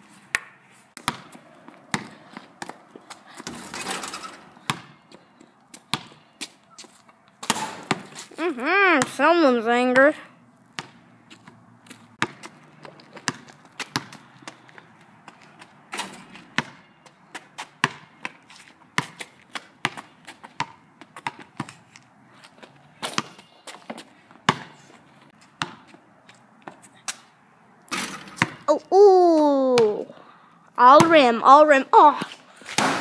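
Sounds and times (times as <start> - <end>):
basketball bouncing on asphalt: 0.1 - 28.7, 29.7 - 30.1, 30.8 - 33.0.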